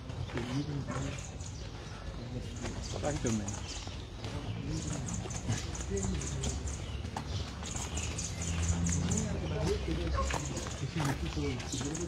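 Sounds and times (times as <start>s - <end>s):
footsteps on pavement: 0.0s - 12.0s
indistinct voices: 0.1s - 12.0s.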